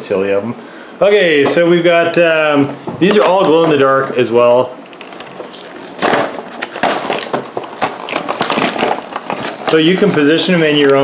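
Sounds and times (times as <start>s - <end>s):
plastic packaging crackling: 3.0s - 11.0s.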